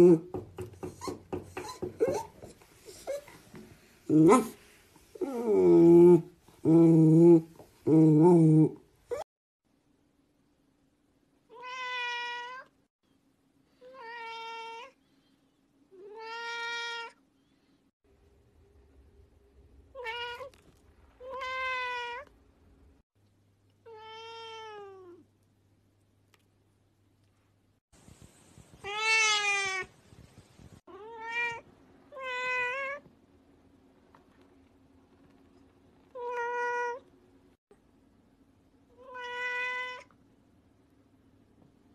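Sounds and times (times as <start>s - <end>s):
cat meowing: 11.5s - 12.7s, 16.0s - 17.2s, 21.2s - 22.3s, 23.9s - 25.2s, 28.8s - 29.9s, 30.9s - 33.0s, 36.2s - 37.0s, 39.0s - 40.1s.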